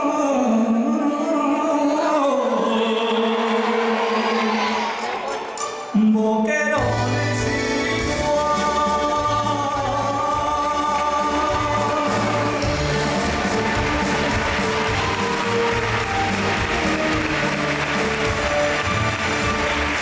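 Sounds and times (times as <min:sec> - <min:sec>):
man singing: 0:00.0 - 0:04.6, 0:05.9 - 0:18.1
live band playing: 0:06.8 - 0:20.0.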